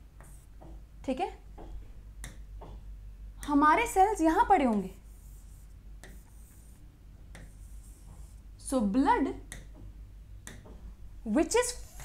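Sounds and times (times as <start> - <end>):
small taps and rustles: 0.1 - 0.9, 1.5 - 2.9.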